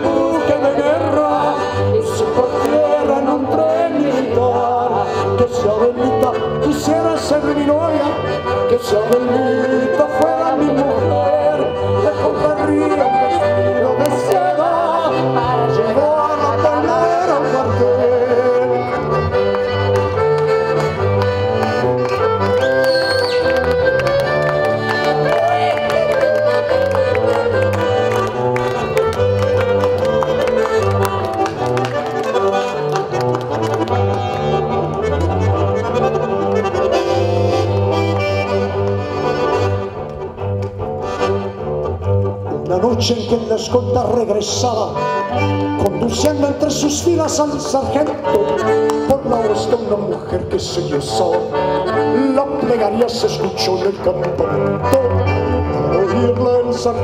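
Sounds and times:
accordion melody: 0.0 - 57.0
cello bass line: 0.0 - 57.0
hand claps: 19.4 - 35.4.

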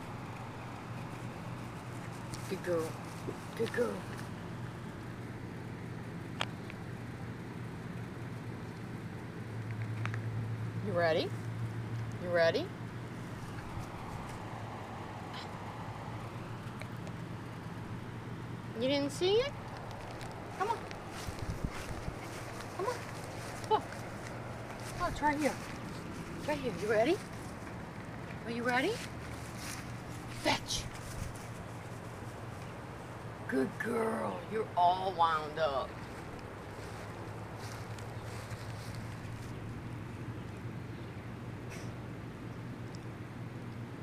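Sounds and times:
faint rustle: 0.0 - 5.3, 13.1 - 18.0, 19.1 - 34.9, 35.8 - 40.7
low outdoor background hum: 0.0 - 44.0
wind on microphone: 20.4 - 22.8.

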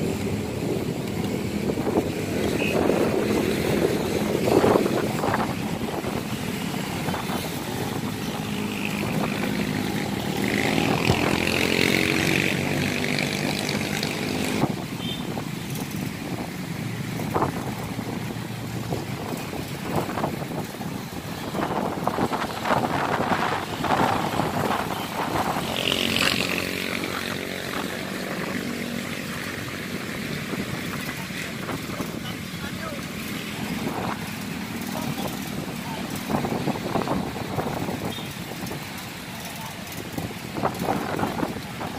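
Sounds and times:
traffic hum: 0.0 - 41.9
vehicles passing: 0.0 - 41.9
people's voices: 30.5 - 37.7.

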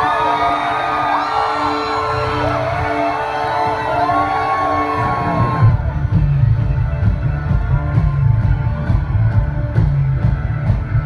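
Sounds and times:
crowd whooping and cheering: 0.0 - 11.0
rock band drums and bass: 3.9 - 11.0.

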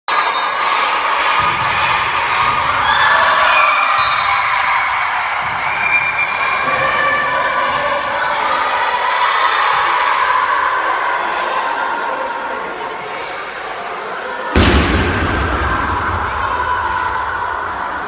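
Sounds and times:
girls shouting and screaming: 15.4 - 18.0.

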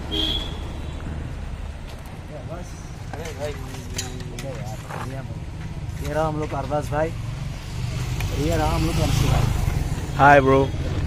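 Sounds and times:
low rumble of street traffic: 0.0 - 11.0
men talking: 2.2 - 7.2, 8.1 - 11.0.

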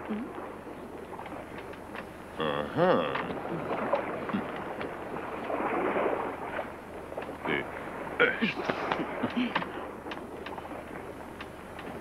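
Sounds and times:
sea noise: 0.0 - 12.0
wind: 0.0 - 12.0
sharp crackles and clicks: 1.0 - 2.1.

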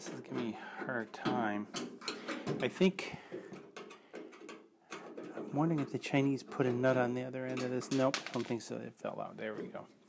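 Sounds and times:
faint handling noise: 0.0 - 8.8.

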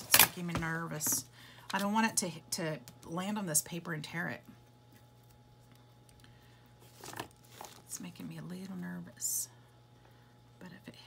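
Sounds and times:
tape rustling: 6.8 - 8.0.

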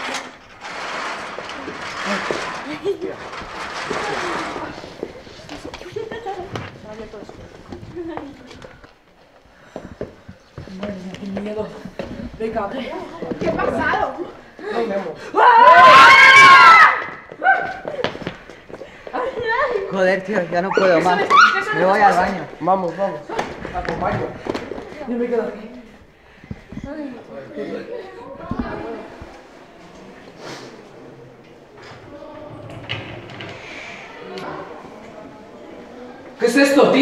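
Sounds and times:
shuffling footsteps: 0.1 - 14.6, 16.8 - 27.3
excited voices: 12.7 - 18.2, 19.0 - 25.1
teenager screaming: 15.3 - 17.8, 20.7 - 21.8.

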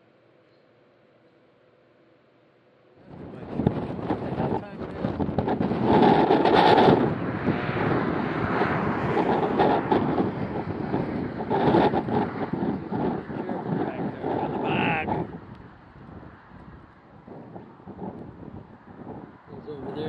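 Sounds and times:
wind buffeting microphone: 3.0 - 20.0.

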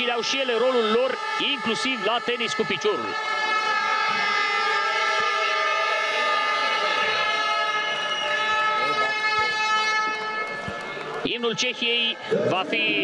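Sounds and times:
plastic fan horns blowing: 0.4 - 11.3.

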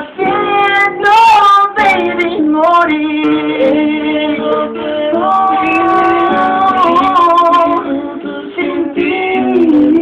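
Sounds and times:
acoustic guitar: 0.0 - 10.0
man singing wordless melody: 1.8 - 10.0.

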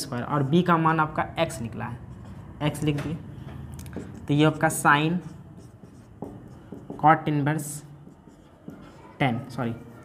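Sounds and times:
marker writing on a whiteboard: 0.0 - 10.0.

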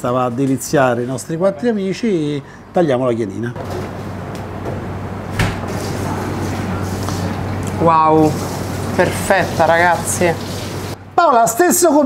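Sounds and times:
background hiss and low hum: 0.0 - 12.0.

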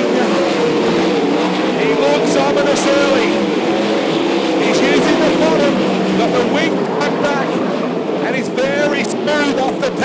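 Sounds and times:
racing car engines: 0.0 - 10.0.

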